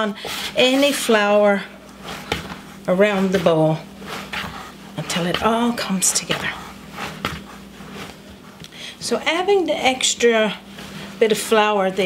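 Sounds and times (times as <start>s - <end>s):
hands kneading bread dough: 0.0s - 12.0s.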